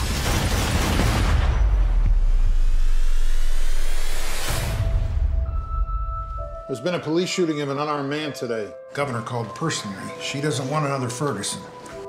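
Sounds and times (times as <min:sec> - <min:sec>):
trailer hit: 0:00.9 - 0:06.1.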